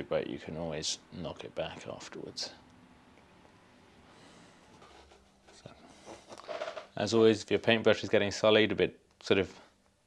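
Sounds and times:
soft rustles: 0:04.5 - 0:06.9.

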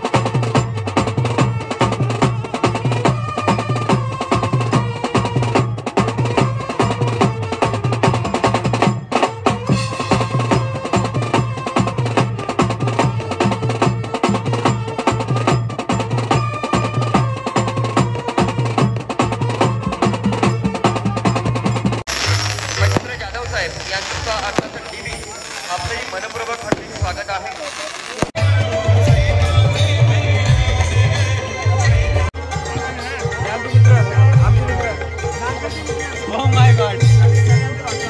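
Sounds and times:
brass band playing: 0:00.0 - 0:32.6
drums and cymbal beating rhythm: 0:00.0 - 0:38.0.

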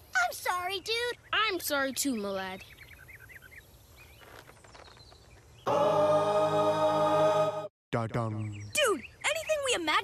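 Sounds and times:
bird-like chirping: 0:00.0 - 0:05.7, 0:08.0 - 0:10.0.

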